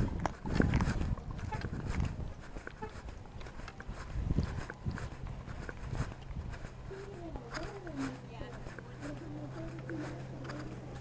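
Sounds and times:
clothing rubbing against camera: 0.0 - 11.0
footsteps on pavement: 0.0 - 11.0.

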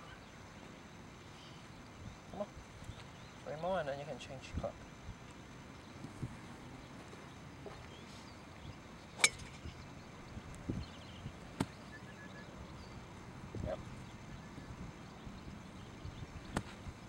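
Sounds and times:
golf clubs striking balls: 9.2 - 9.9.

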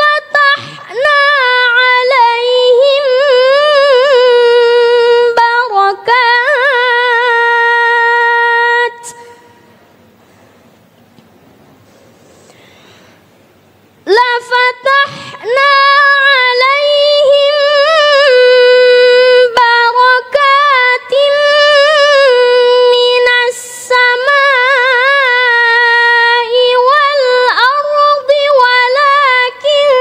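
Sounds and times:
quick breath in: 11.8 - 13.4, 15.1 - 15.4
person chanting recitation: 14.1 - 30.0.

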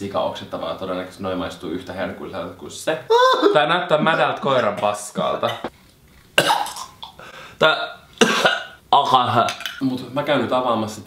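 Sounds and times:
man speaking: 0.0 - 5.7
man gagging and retching: 6.4 - 7.2.

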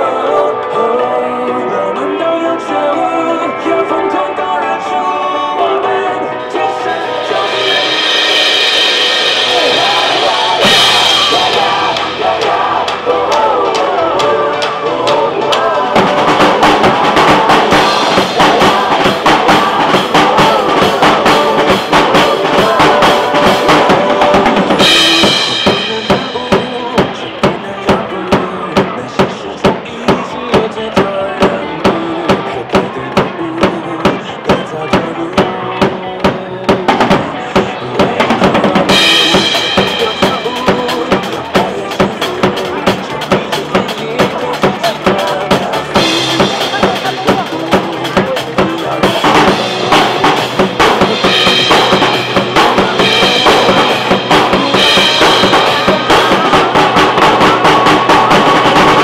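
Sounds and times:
pop backing track: 0.0 - 59.0
drum kit playing: 6.6 - 59.0.

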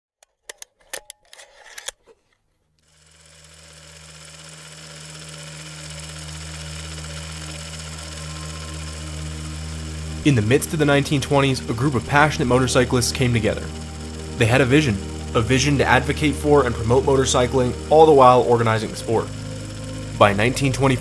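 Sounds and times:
mechanical hum and whir: 0.8 - 21.0.

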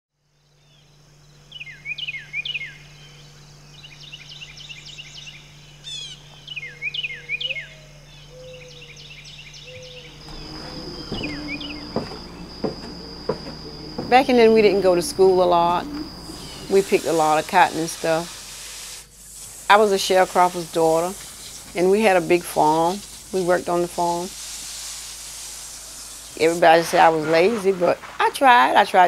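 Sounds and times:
high insect tone: 0.4 - 29.0
birds calling and chirping: 1.5 - 18.2
sharp knocks: 10.2 - 16.8.

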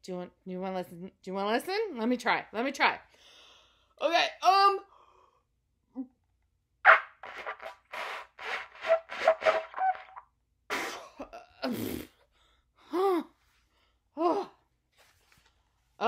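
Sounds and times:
sputtering trumpet blats: 6.9 - 10.2.

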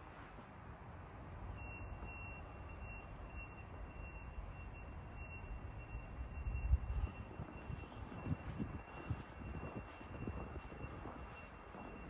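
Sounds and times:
low rumble of street noise: 0.0 - 12.0.

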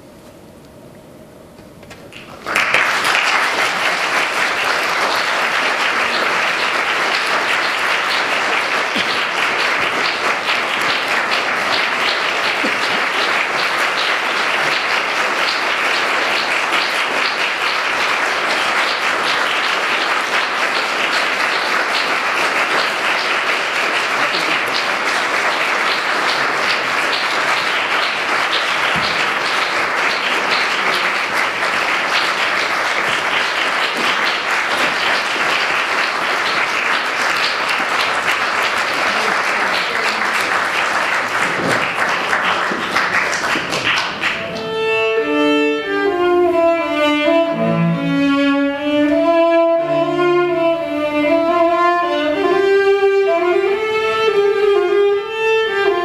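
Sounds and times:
audience applauding: 2.1 - 45.3.

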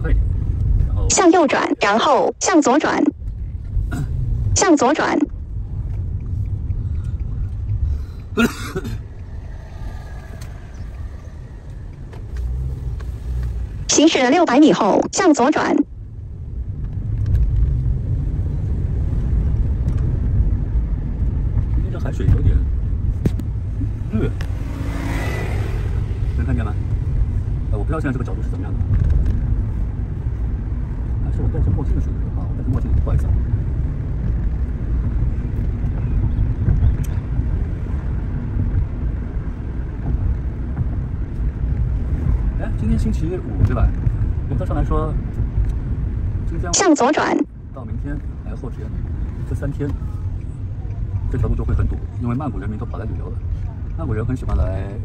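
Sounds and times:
car engine and tyre rumble: 0.0 - 55.0.

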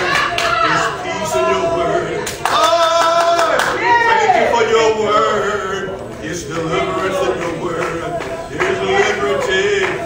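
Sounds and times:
congregation singing and calling out: 0.0 - 10.0
hand claps: 6.5 - 10.0.

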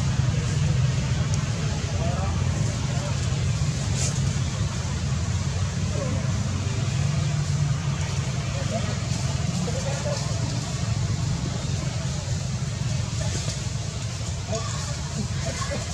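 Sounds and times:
distant voices: 0.0 - 15.9
low rumble and hiss: 0.0 - 15.9.

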